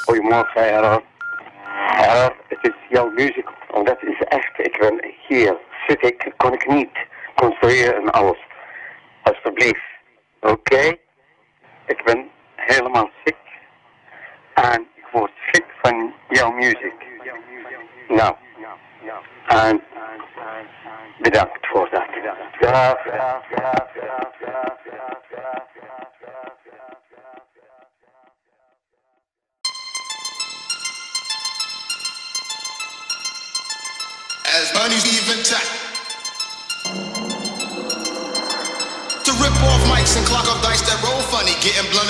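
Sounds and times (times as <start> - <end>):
hardcore electronic track: 0.0 - 0.2, 34.8 - 42.0
filtered voice sample: 0.0 - 1.0, 1.7 - 6.0, 36.8 - 42.0
loud hits: 36.8 - 42.0.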